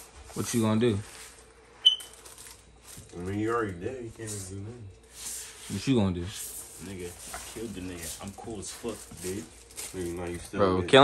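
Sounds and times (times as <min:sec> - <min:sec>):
short high-pitched beep: 0:01.8 - 0:02.1.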